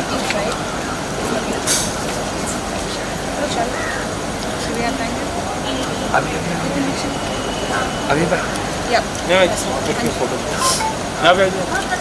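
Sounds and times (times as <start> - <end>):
indistinct voices: 0.0 - 12.0
street noise: 0.0 - 12.0.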